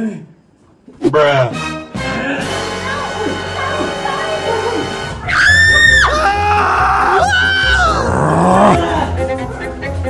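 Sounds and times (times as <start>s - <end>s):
high-pitched scream: 5.2s - 8.8s
lower voice sounds: 7.8s - 8.9s.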